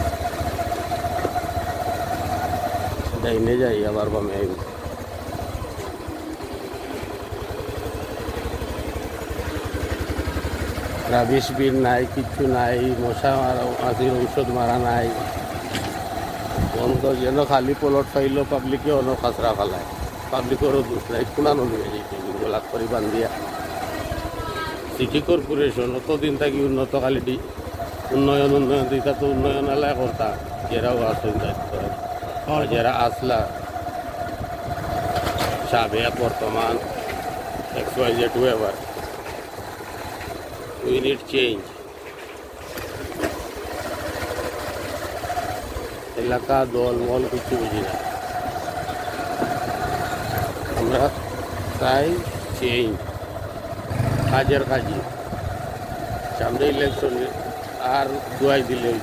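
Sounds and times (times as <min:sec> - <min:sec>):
low outdoor rumble: 0:00.0 - 0:59.0
small engine running: 0:00.0 - 0:59.0.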